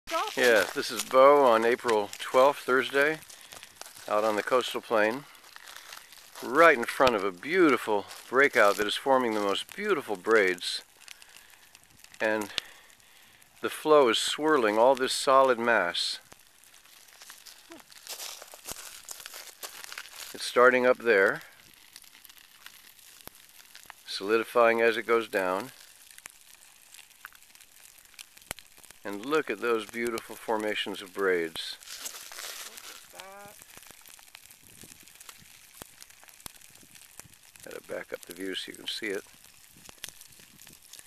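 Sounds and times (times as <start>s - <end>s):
lava crust crackling: 0.1s - 41.0s.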